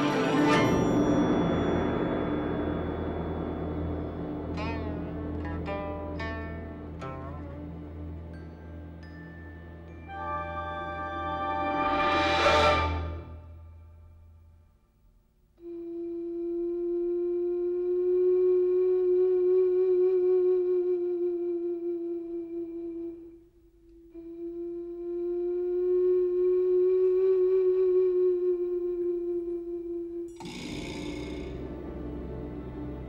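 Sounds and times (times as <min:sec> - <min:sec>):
flute holding long notes: 0:10.0 - 0:13.7, 0:15.6 - 0:23.5, 0:24.1 - 0:30.4.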